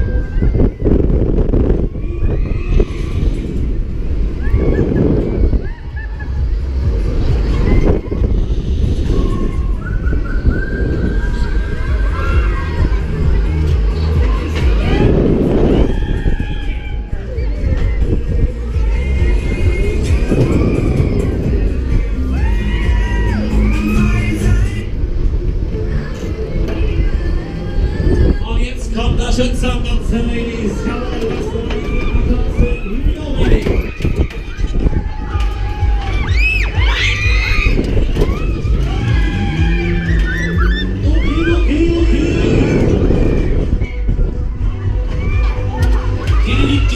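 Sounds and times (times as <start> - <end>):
wind rushing over microphone: 0.0 - 46.9
riders' high cries: 31.1 - 44.0.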